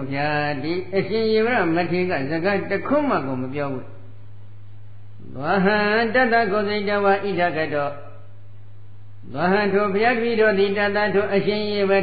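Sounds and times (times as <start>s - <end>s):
man chanting: 0.0s - 4.0s, 5.2s - 8.3s, 9.2s - 12.0s
low electrical hum: 0.0s - 12.0s.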